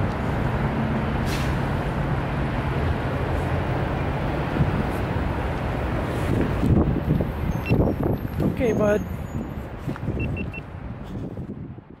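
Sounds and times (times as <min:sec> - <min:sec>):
low rumbling vehicle noise: 0:00.0 - 0:12.0
quick high beeps: 0:07.5 - 0:07.9, 0:10.2 - 0:10.6.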